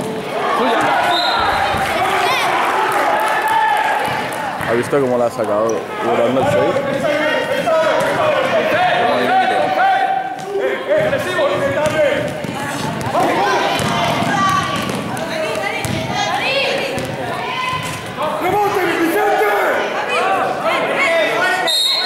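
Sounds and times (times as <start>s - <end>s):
people calling out and talking: 0.0s - 22.0s
basketball dribbling on floor: 13.8s - 16.1s, 17.0s - 17.2s.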